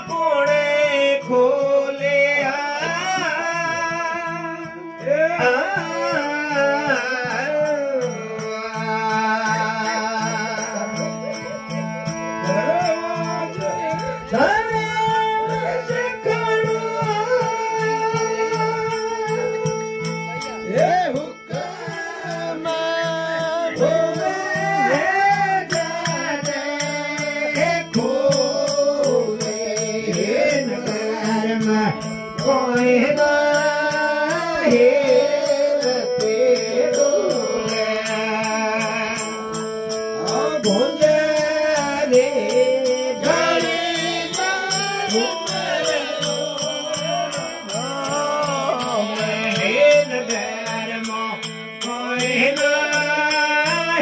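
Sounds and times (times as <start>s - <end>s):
harmonium: 0.0s - 54.0s
man singing: 0.0s - 54.0s
metallic jingle beat: 0.0s - 54.0s.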